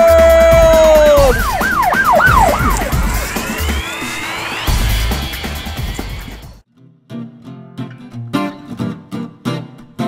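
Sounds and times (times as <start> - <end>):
siren yelping: 0.7 - 5.4.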